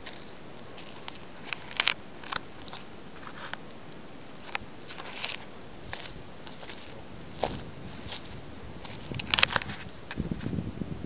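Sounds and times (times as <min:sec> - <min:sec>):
footsteps crunching on gravel: 0:00.0 - 0:03.7, 0:04.3 - 0:10.6.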